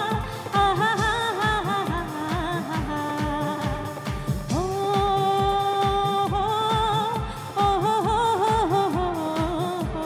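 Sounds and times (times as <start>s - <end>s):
live band playing: 0.0s - 10.0s
steady drum beat: 0.0s - 10.0s
woman singing: 0.0s - 10.0s.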